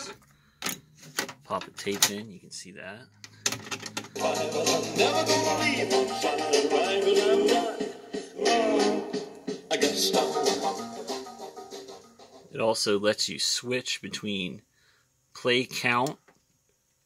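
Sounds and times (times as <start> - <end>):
music from a cassette: 4.0 - 12.5.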